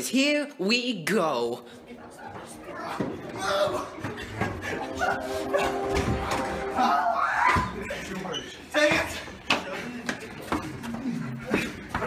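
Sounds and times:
teenagers talking: 0.0 - 12.0.

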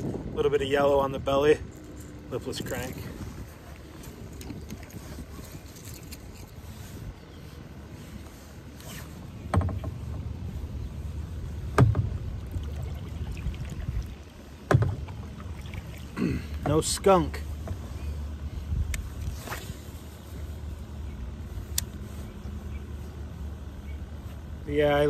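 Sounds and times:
wind rumbling on microphone: 0.0 - 16.2, 17.5 - 24.6
sharp knocks: 11.7 - 12.2, 14.7 - 15.1.

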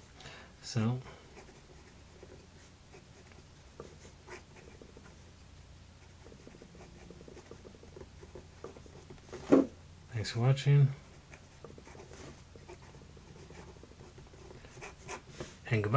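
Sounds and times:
pen nib scratching paper: 1.4 - 5.2, 6.0 - 9.3, 11.1 - 15.5.

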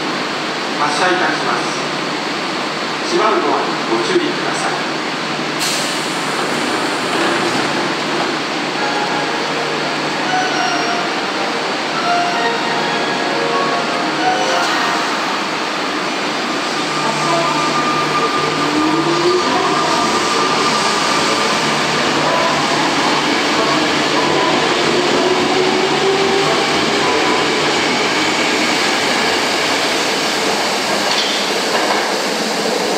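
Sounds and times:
subway train accelerating away: 0.0 - 32.9.

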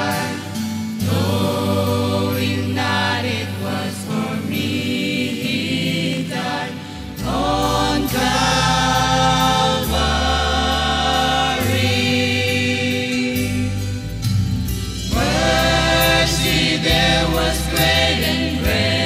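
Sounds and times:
group singing a hymn: 0.0 - 14.3, 15.0 - 19.0
sustained low bass notes: 7.2 - 19.0.

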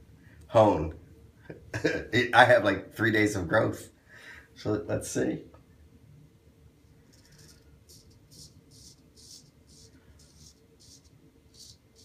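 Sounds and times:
razor scraping stubble: 7.1 - 12.0.

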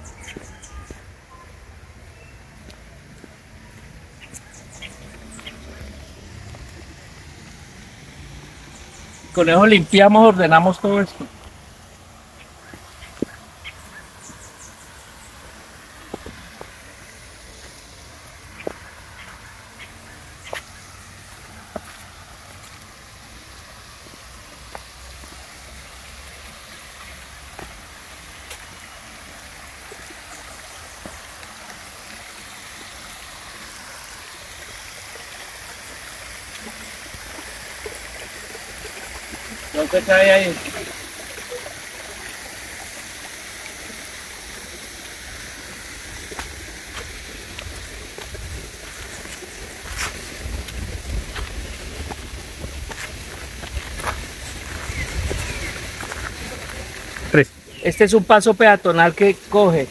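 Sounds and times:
creek running over rocks: 0.0 - 59.9
light footsteps: 46.2 - 57.3.

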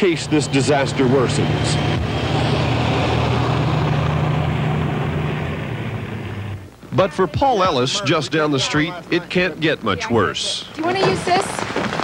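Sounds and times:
fire truck engine driving past: 0.0 - 6.7.

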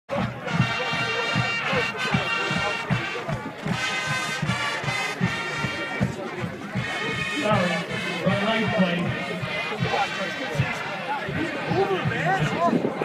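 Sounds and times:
crowd voices: 0.1 - 13.0
quick steady drumbeat: 0.1 - 13.0.

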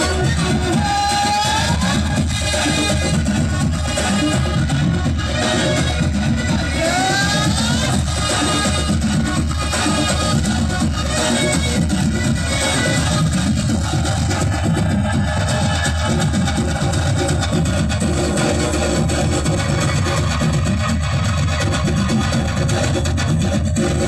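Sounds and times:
dance music over loudspeaker: 0.0 - 24.0.

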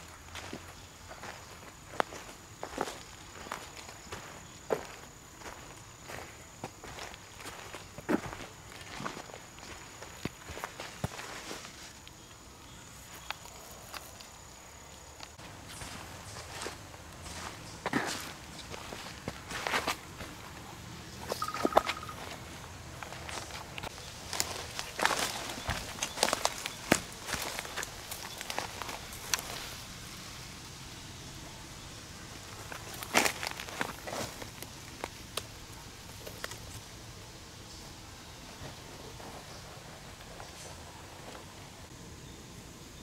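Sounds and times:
footsteps on dry leaves: 0.0 - 12.0, 15.4 - 30.1, 32.4 - 35.3.

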